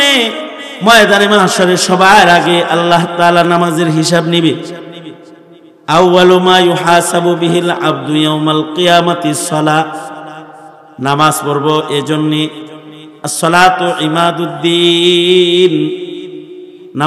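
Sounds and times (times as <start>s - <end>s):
man chanting through loudspeakers: 0.0s - 17.0s.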